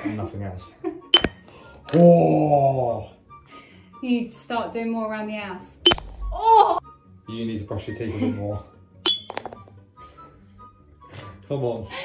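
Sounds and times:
pen clinking against glass jar: 9.1s - 9.6s.

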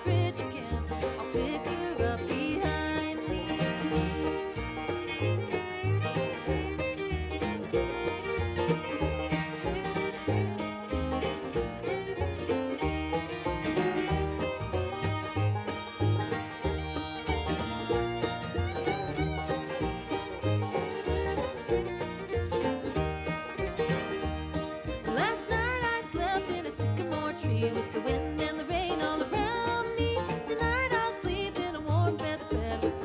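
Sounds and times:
bluegrass string band: 0.0s - 33.0s
upright bass notes: 0.0s - 33.0s.

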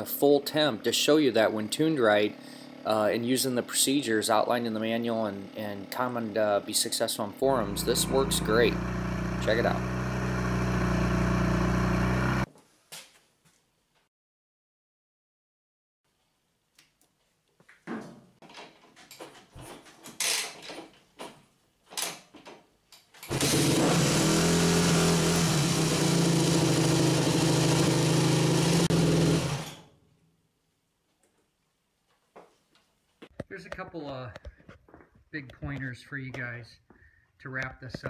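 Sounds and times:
dirt bike engine running: 0.8s - 12.5s, 23.3s - 29.6s.

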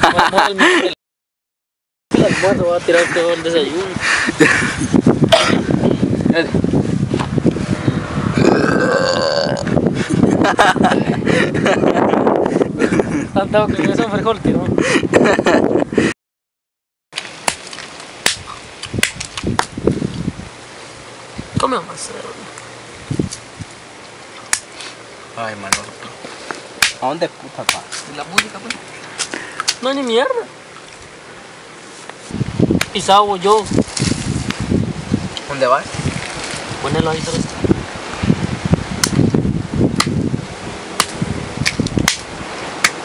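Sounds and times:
faint outdoor background: 0.0s - 1.0s, 2.1s - 16.1s, 17.2s - 43.0s
grass brushing microphone: 2.1s - 8.6s, 22.4s - 25.1s, 31.8s - 42.8s.

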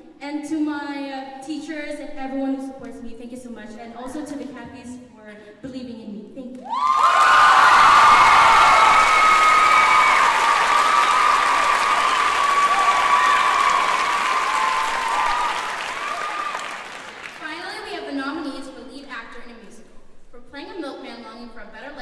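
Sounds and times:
crowd cheering and shouting: 6.7s - 17.2s
audience applauding: 6.7s - 17.4s.

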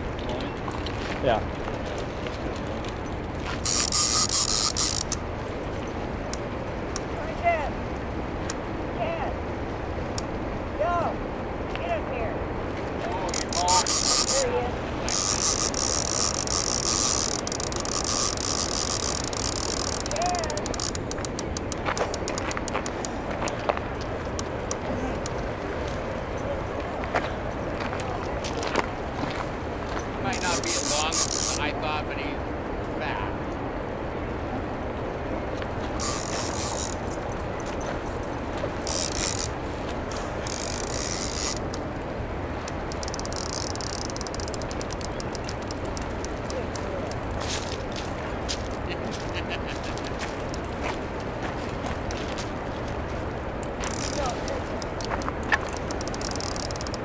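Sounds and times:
fast river water rushing: 1.2s - 57.0s
fishing reel drag buzzing: 3.5s - 5.2s, 13.3s - 23.0s, 30.3s - 31.6s, 36.0s - 37.1s, 38.8s - 41.8s, 42.7s - 47.2s, 53.8s - 57.0s
quick ratchet clicks: 3.6s - 5.2s, 13.3s - 14.4s, 15.1s - 23.0s, 30.4s - 31.6s, 36.0s - 37.0s, 38.8s - 39.5s, 40.4s - 41.8s, 42.7s - 47.2s, 53.8s - 57.0s.

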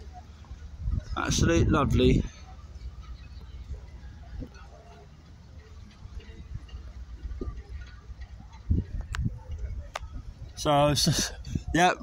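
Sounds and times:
faint distant sounds: 0.0s - 12.0s.

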